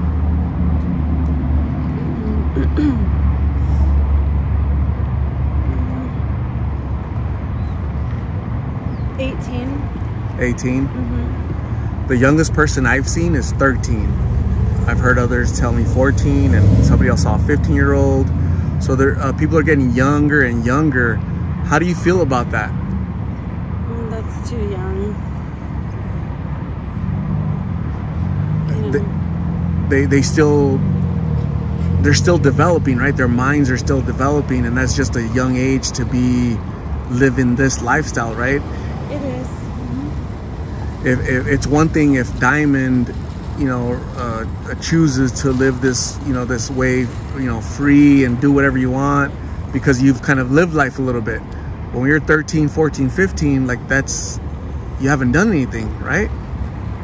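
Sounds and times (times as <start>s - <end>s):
low outdoor rumble: 0.0s - 57.0s
road traffic: 0.0s - 57.0s
faint speech: 10.4s - 11.3s, 28.7s - 29.1s, 41.1s - 51.3s.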